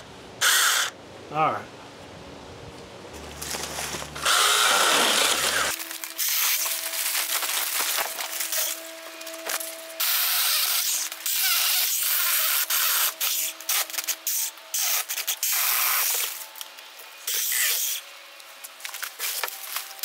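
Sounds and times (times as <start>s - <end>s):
chainsaw motor whine: 3.1s - 14.6s
chainsaw rasping through wood: 3.4s - 13.6s.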